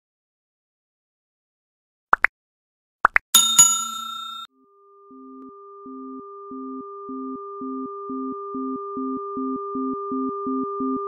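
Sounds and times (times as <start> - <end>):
low pulsing tone: 4.6 - 11.0
steady pure sine tones: 4.7 - 11.0.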